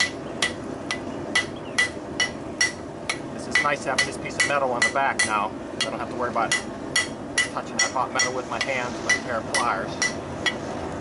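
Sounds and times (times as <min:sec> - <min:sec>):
hammer striking hot steel on anvil: 0:00.0 - 0:10.6.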